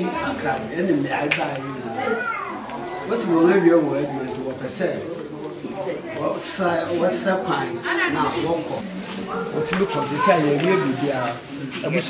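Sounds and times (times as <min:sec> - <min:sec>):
children's voices: 0:01.5 - 0:04.1, 0:07.8 - 0:11.5
man talking: 0:03.1 - 0:08.8, 0:09.5 - 0:12.0.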